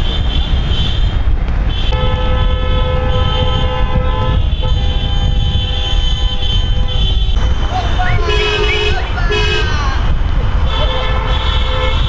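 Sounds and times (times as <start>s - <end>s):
car horns honking: 0.0s - 12.0s
rumble of engines and tyres: 0.0s - 12.0s.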